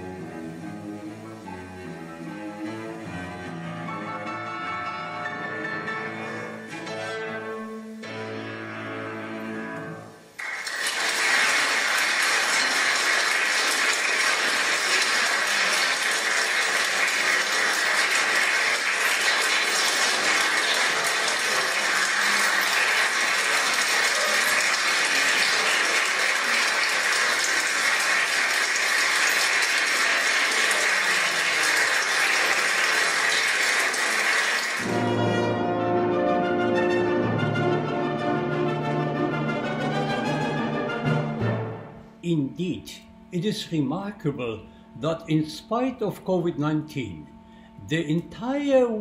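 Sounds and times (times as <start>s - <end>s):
large audience applauding: 10.4s - 35.6s.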